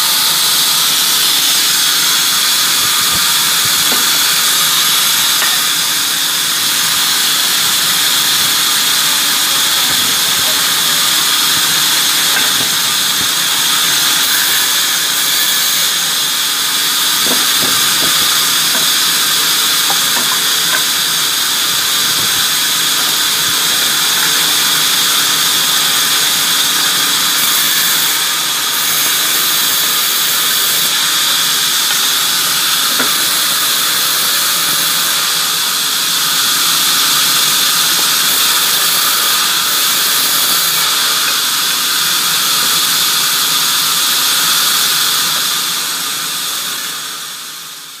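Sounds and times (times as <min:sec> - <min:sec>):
band saw cutting timber: 0:00.0 - 0:48.0.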